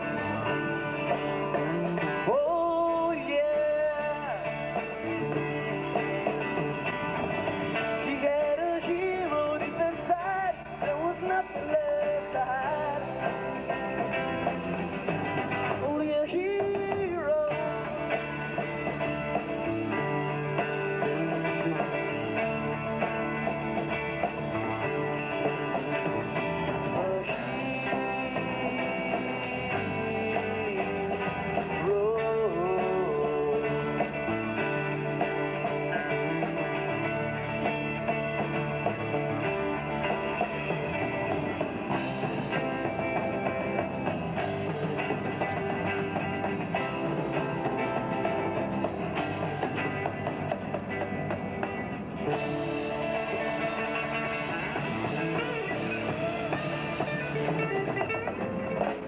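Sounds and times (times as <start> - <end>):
bass guitar: 0.0 - 59.0
drum kit: 0.0 - 59.0
electric guitars: 0.0 - 59.0.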